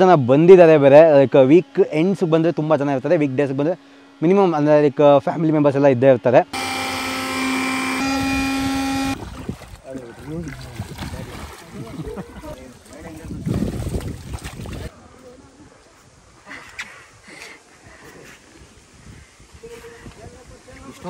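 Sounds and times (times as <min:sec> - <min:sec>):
electric air blower running: 0:06.5 - 0:09.2.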